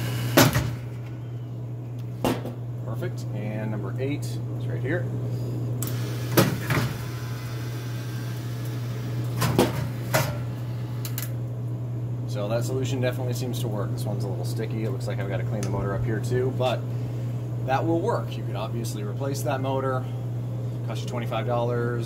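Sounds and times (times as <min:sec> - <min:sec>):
vending machine hum: 0:00.0 - 0:22.0.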